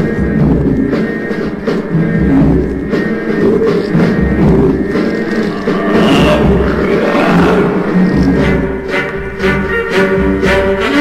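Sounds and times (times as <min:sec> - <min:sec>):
instrumental music: 0:00.0 - 0:11.0
steady bass beat: 0:01.9 - 0:09.1
rushing sound: 0:04.7 - 0:09.0.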